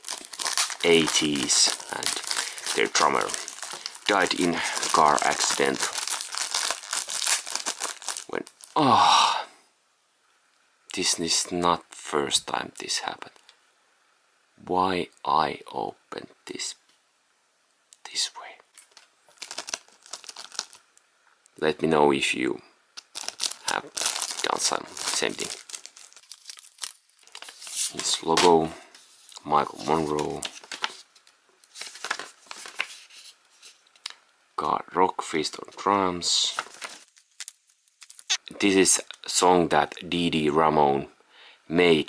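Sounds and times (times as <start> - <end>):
plastic wrapping crinkling: 0.0 - 8.8, 18.8 - 20.9, 23.0 - 34.1, 36.5 - 38.4.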